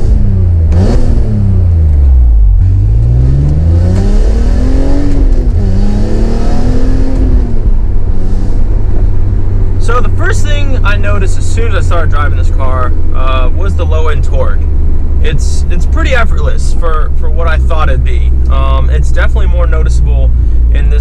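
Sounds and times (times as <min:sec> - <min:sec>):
car engine revving: 0:00.0 - 0:21.0.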